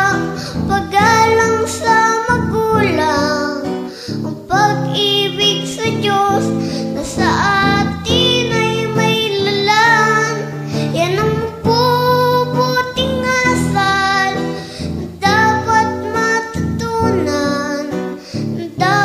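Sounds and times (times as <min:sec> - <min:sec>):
high voice singing: 0:00.0 - 0:19.0.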